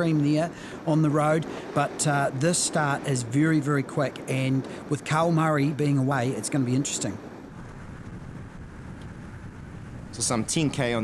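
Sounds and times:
road noise: 0:00.0 - 0:11.0
wind rumble: 0:00.0 - 0:11.0.

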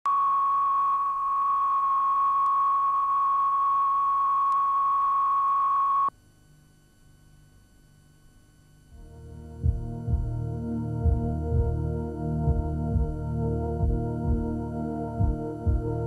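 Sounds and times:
faint background hum: 0:00.1 - 0:16.0
steady test tone: 0:08.8 - 0:16.0.

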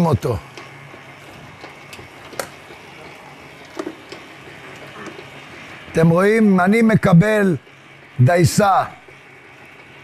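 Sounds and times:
mixer grinding attachment running: 0:00.0 - 0:10.0.

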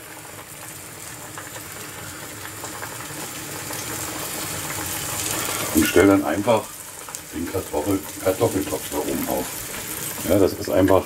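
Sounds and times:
skin sizzling in a pan: 0:00.0 - 0:11.0.

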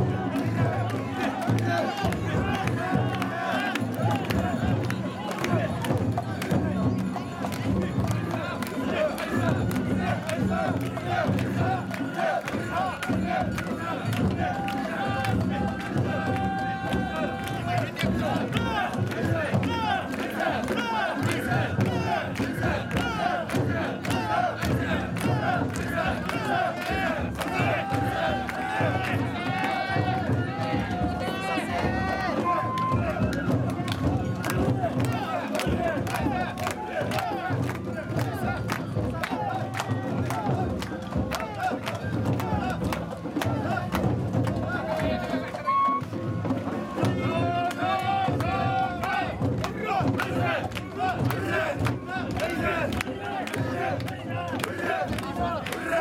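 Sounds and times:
crowd chanting and shouting: 0:00.0 - 0:56.0.

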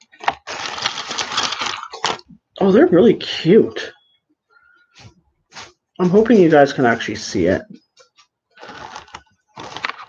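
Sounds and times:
crinkly packaging rustling: 0:00.0 - 0:02.4, 0:08.0 - 0:10.0.

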